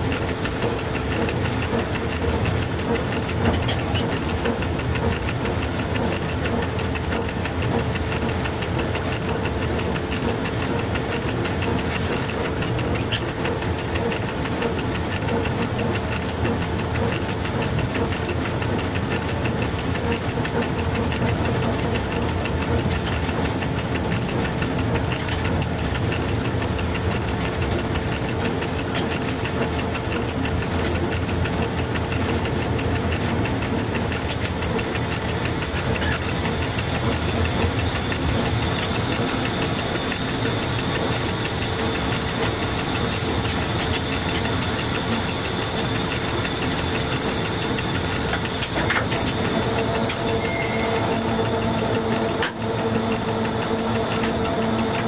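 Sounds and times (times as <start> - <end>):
electric locomotive running: 0.0 - 55.0
wheels on rails: 0.0 - 55.0.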